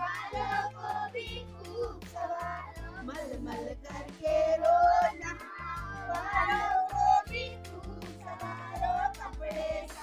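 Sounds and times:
children singing together: 0.0 - 10.0.

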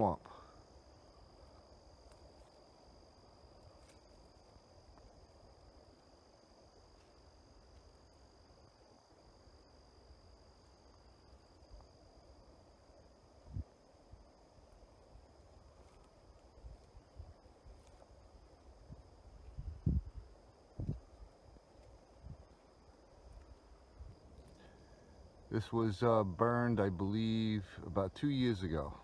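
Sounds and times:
crickets droning: 0.0 - 29.0
low rumble of wind: 0.0 - 29.0.

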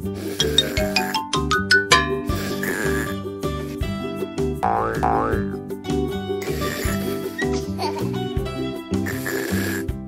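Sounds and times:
cartoon background music: 0.0 - 10.0
rising boing sound effects: 4.6 - 5.6.

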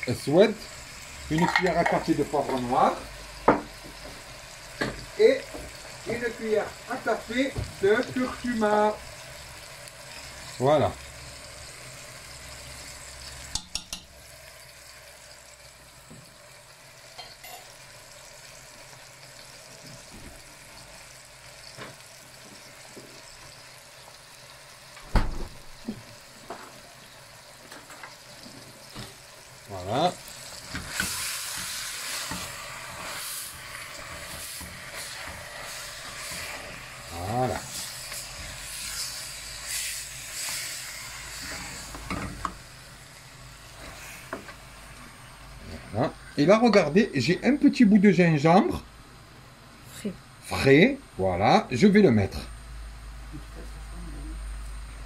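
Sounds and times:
meat sizzling in oil: 0.0 - 49.4.

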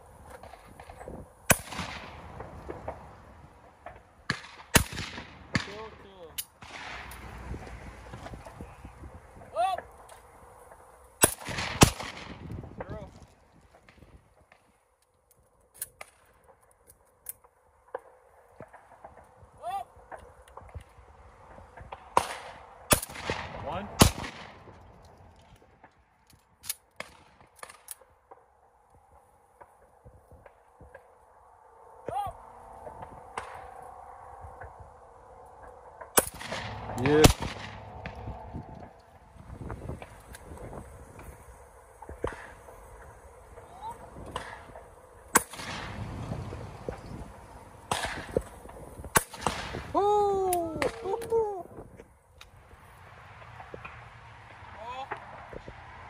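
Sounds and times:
shotgun shots with echo: 1.5 - 2.2, 4.3 - 6.0, 11.2 - 12.4, 22.1 - 24.6, 36.2 - 38.2, 47.9 - 48.4.

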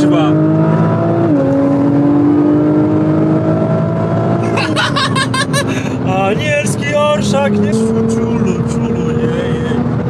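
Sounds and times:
car engine accelerating: 0.0 - 10.0
man laughing loudly: 4.4 - 6.1.

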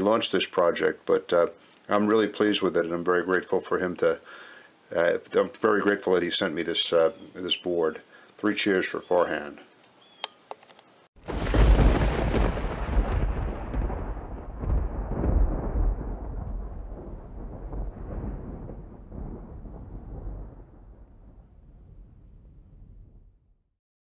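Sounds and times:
deep boom with rolling rumble: 11.2 - 23.5.

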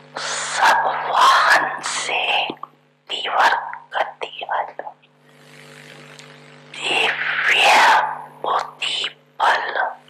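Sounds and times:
steady low hum: 0.0 - 10.0
woman speaking into microphone: 0.3 - 5.0.

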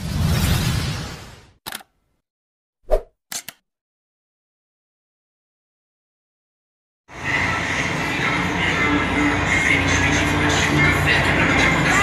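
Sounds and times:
short click: 3.3 - 3.6.

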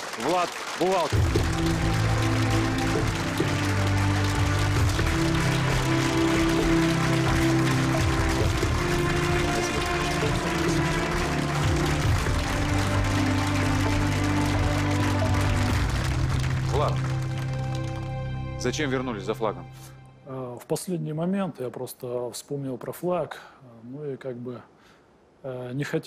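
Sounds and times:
audience applauding: 0.0 - 19.3
music with long held chords: 1.1 - 20.3.

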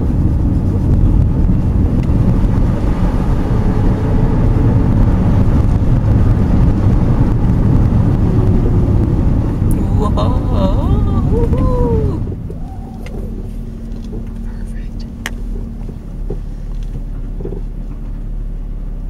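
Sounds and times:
wind noise: 0.0 - 14.4
tyres and engine rumble: 0.0 - 19.0.

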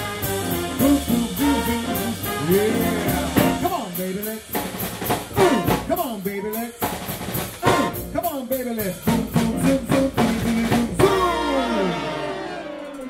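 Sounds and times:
drum kit hits: 0.0 - 6.2, 6.8 - 12.1
big band music: 0.0 - 13.0.

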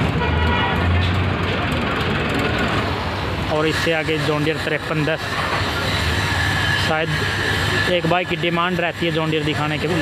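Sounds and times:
outdoor noise: 0.0 - 10.0
vehicle engine rumbling: 0.0 - 10.0.

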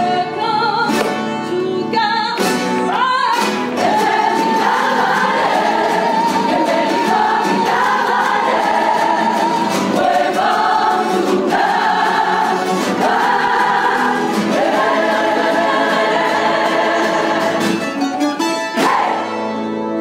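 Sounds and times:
plucked guitars and lutes: 0.0 - 20.0
mixed choir singing: 3.7 - 17.8, 18.8 - 19.5.

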